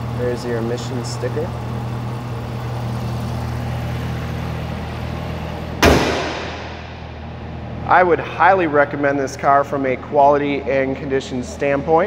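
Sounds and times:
car engine idling: 0.0s - 12.0s
car hood slamming shut: 5.7s - 7.0s.

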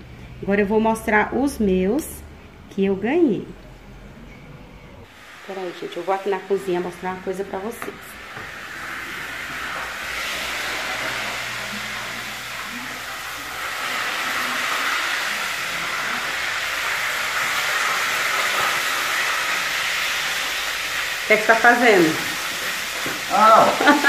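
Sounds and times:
sausage sizzling in a pan: 5.1s - 24.0s.

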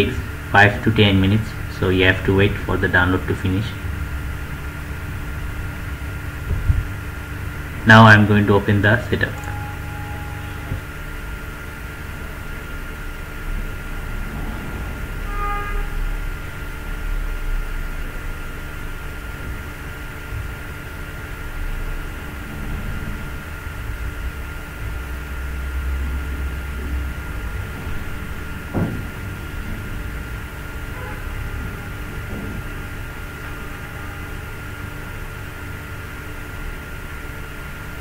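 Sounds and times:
constant thin whine: 0.0s - 38.0s
low hum: 0.0s - 38.0s
brief pitched tone: 9.3s - 11.3s
low rumble: 9.3s - 34.0s.

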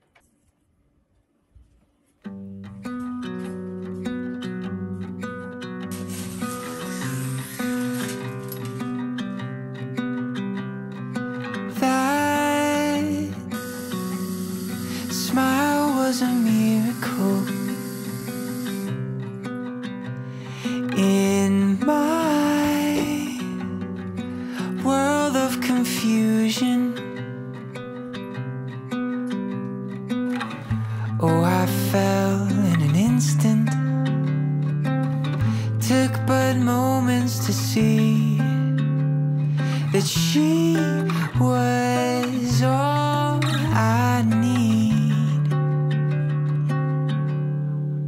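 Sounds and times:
plucked string instrumental music: 2.2s - 48.0s.

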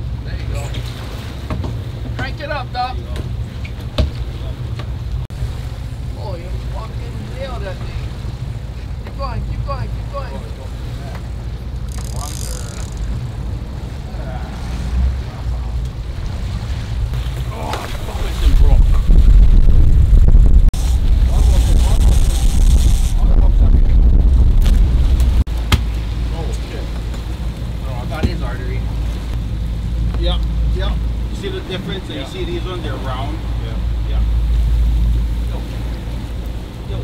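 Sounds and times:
boat engine rumbling: 0.0s - 37.0s
wind buffeting microphone: 0.0s - 37.0s.

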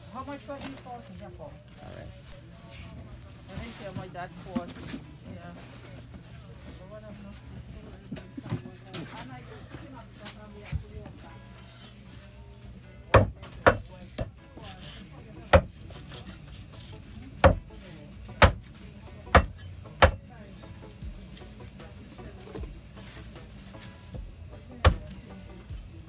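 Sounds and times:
cleaver chopping on wooden block: 13.1s - 14.3s, 15.5s - 15.8s, 17.4s - 17.6s, 18.4s - 18.6s, 19.3s - 20.2s, 24.8s - 25.0s.

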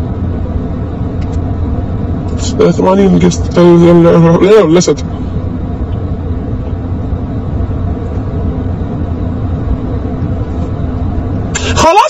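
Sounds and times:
low rumble: 0.0s - 11.6s.

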